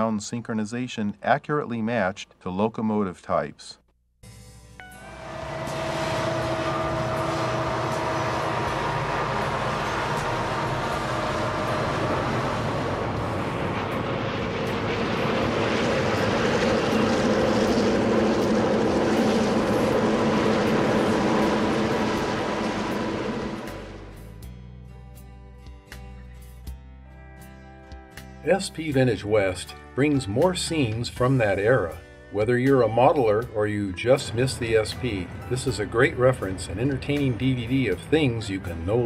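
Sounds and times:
rail noise: 4.8s - 24.2s
diesel locomotives running under load: 4.9s - 24.2s, 34.1s - 39.0s.

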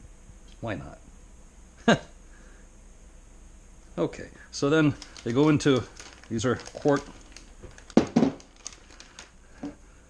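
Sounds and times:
plastic rustling: 4.7s - 9.8s.

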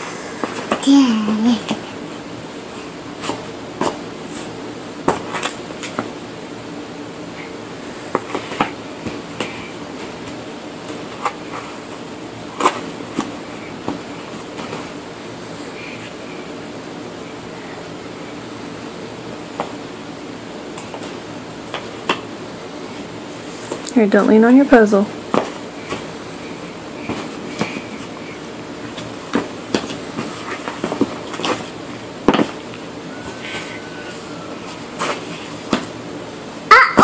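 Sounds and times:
steady background hum: 0.0s - 37.0s.

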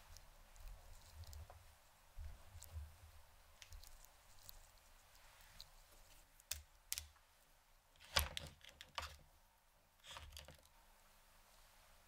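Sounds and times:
synthetic hair crackling clicks: 6.4s - 7.2s.

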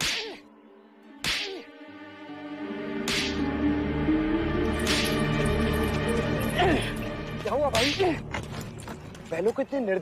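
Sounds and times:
whip cracking: 0.0s - 0.4s, 1.2s - 1.6s, 3.0s - 3.4s, 4.8s - 5.2s
background music: 0.0s - 10.0s.

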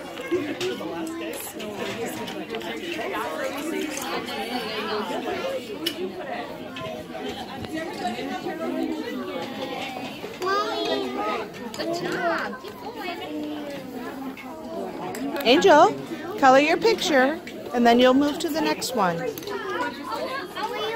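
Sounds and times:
crowd chatter: 0.0s - 20.9s.

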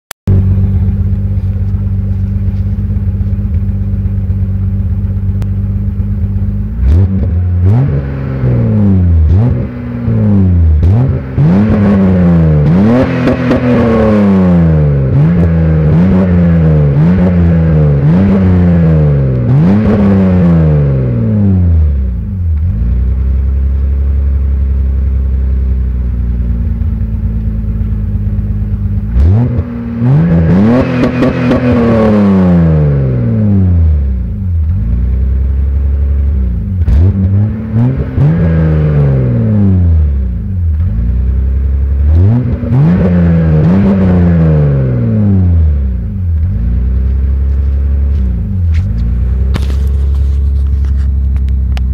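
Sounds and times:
car engine idling: 0.3s - 51.9s
car engine revving: 0.3s - 51.9s.

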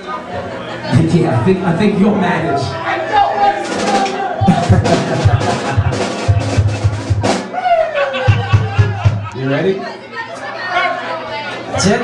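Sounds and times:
rock drum beat: 3.6s - 7.6s, 8.2s - 9.3s
low bass notes: 4.5s - 7.4s.

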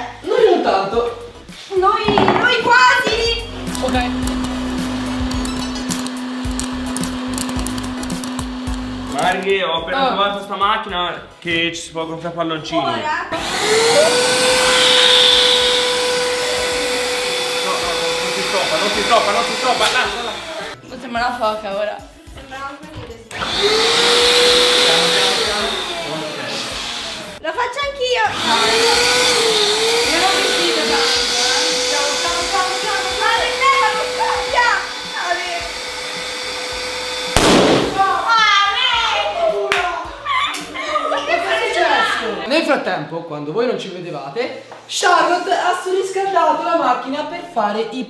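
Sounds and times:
voices: 1.8s - 4.2s
popcorn maker humming: 3.5s - 9.5s, 13.4s - 20.8s, 23.3s - 27.4s, 28.3s - 37.6s.

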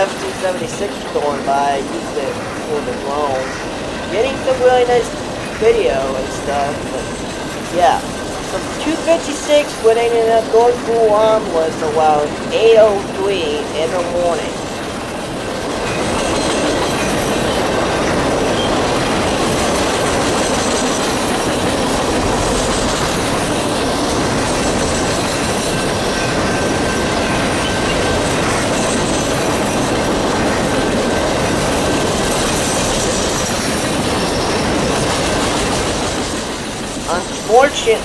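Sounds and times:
train wheels rumbling on rails: 0.0s - 38.0s.

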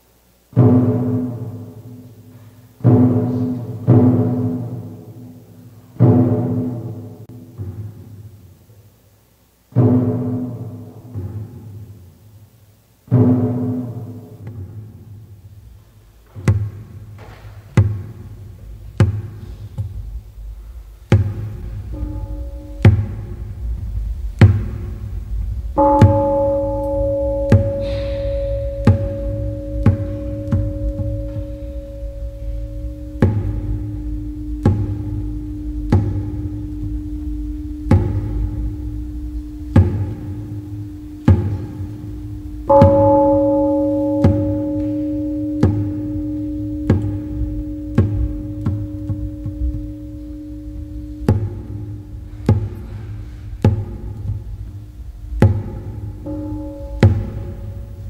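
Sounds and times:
bell ringing: 25.8s - 53.1s, 56.2s - 58.0s.

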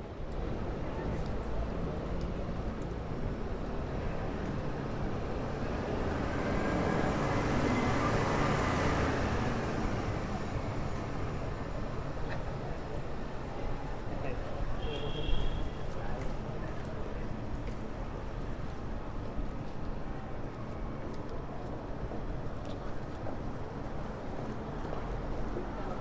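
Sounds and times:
passersby talking: 15.6s - 19.0s.

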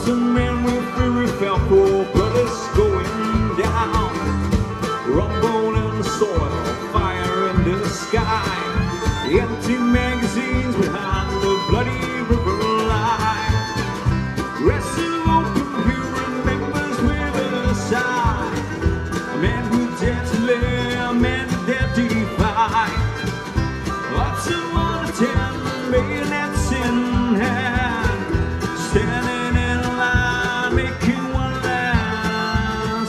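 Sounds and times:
acoustic guitar: 0.0s - 33.0s
banjo: 0.0s - 33.0s
bluegrass band playing: 0.0s - 33.0s
fiddle: 0.0s - 33.0s
upright bass: 0.0s - 33.0s.

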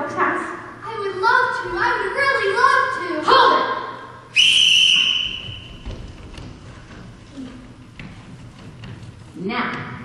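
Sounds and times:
shrill whistle blast: 4.3s - 5.8s.

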